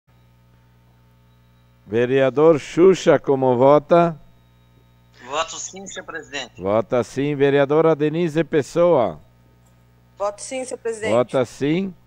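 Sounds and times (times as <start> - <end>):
faint electrical mains hum: 0.1 - 12.0
man's voice: 11.0 - 12.0.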